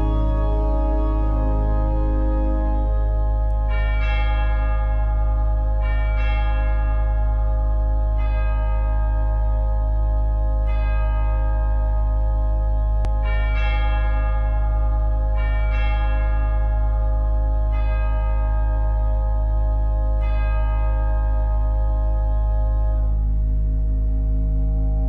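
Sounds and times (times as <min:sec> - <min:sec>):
held organ bass note: 0:00.0 - 0:06.5, 0:21.4 - 0:25.0
organ bell-like chords: 0:00.0 - 0:25.0.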